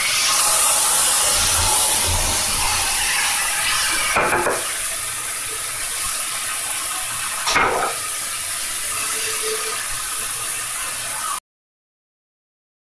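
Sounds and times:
food sizzling in a frying pan: 0.0 - 11.4.

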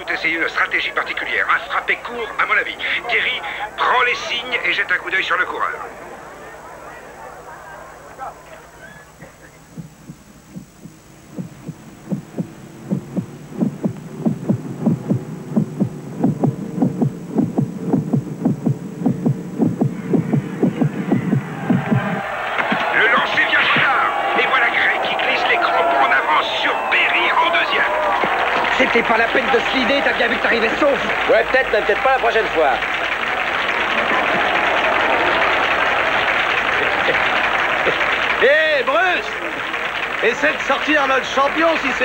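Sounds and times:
heartbeat-like pulse: 9.7 - 22.3
low drone: 11.2 - 22.2
crowd cheering and shouting: 19.9 - 42.0.

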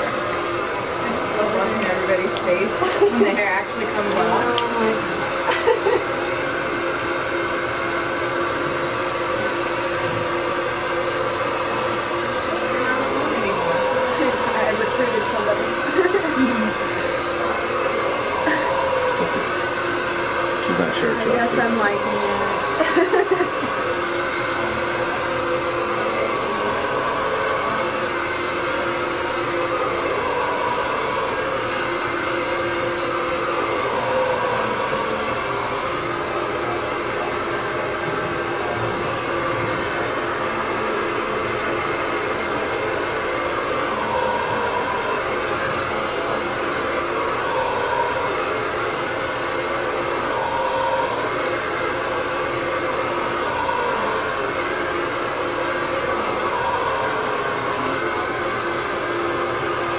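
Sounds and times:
electric hair clippers buzzing: 0.0 - 59.9.

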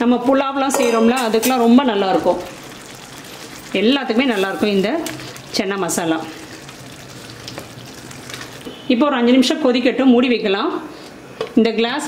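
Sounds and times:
gravy sizzling in a pan: 1.4 - 8.9
woman speaking: 3.8 - 6.4, 11.6 - 12.0.

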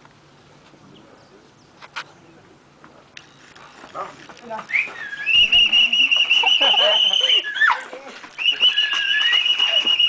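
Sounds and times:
rising whistle: 4.7 - 7.8, 8.4 - 10.0.

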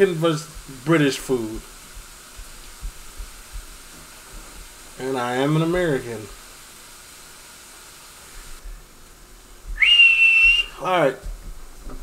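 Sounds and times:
faint background hiss: 0.0 - 12.0
high whistled note: 9.8 - 10.8.

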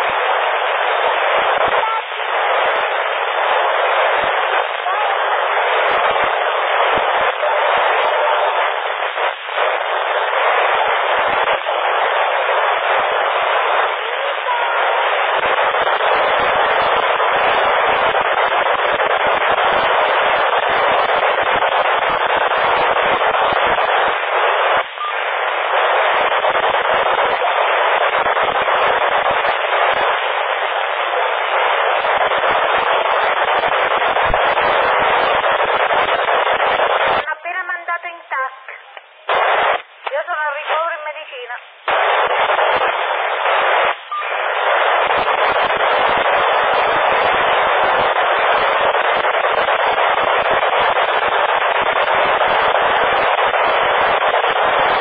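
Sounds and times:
faint broken radio voice: 0.0 - 21.0, 24.8 - 30.0, 37.0 - 41.7
radio static hiss: 0.0 - 55.0.

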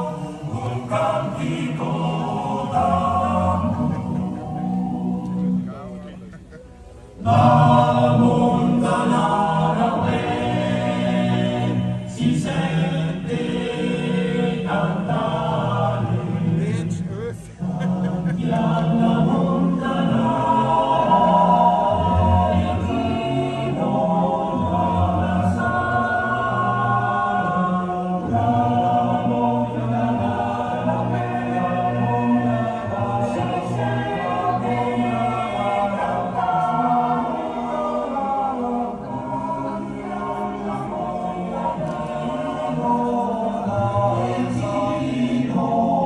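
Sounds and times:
choir singing slow chords: 0.0 - 46.0.

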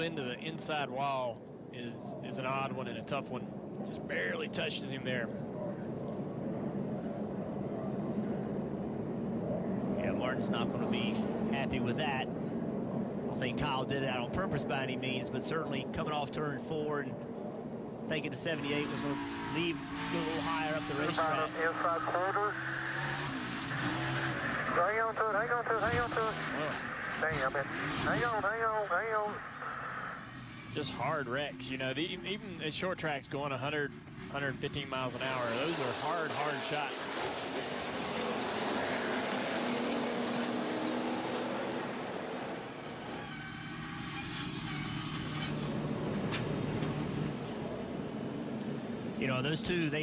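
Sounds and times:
race car engine: 1.4 - 50.0
tires skidding: 18.3 - 31.0, 35.0 - 47.4.

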